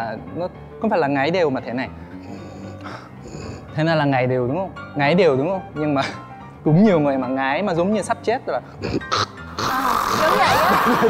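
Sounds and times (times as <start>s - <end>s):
man imitating snoring: 2.2s - 3.7s, 8.8s - 11.0s.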